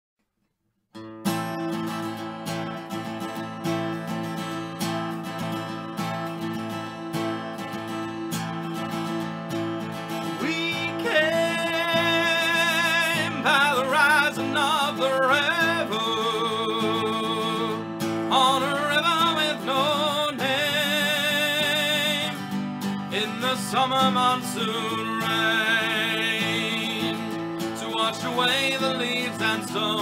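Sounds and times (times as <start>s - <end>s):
acoustic guitar strumming: 0.9s - 30.0s.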